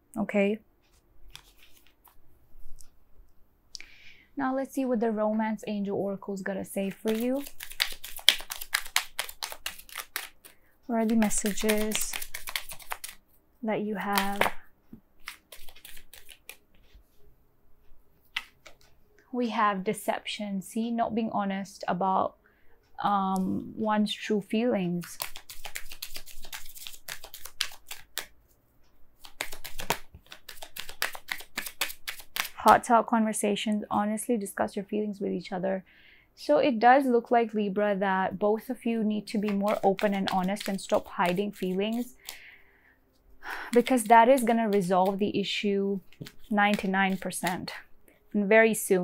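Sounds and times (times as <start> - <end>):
cards being shuffled: 0.8 - 3.0, 6.8 - 13.2, 14.0 - 17.2, 18.2 - 19.0, 25.0 - 28.4, 29.2 - 32.8, 39.3 - 42.5, 43.7 - 47.8.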